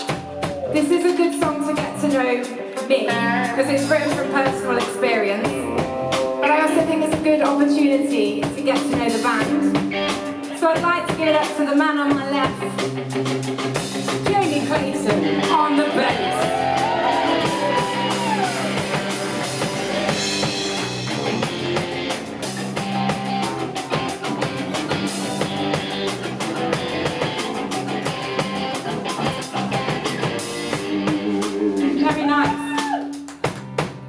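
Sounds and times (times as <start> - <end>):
drum kit beat: 0.0 - 34.0
electric bass guitar: 0.0 - 34.0.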